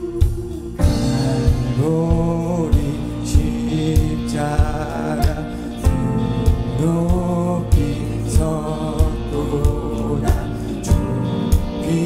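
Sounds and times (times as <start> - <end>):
keyboard accompaniment: 0.0 - 12.0
steady drum beat: 0.0 - 12.0
vocal ensemble singing: 0.0 - 12.0.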